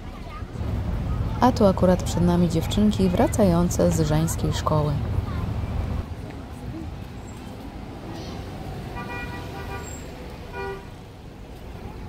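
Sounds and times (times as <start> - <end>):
street traffic rumble: 0.0 - 12.0
vehicle horn tooting: 9.0 - 11.0.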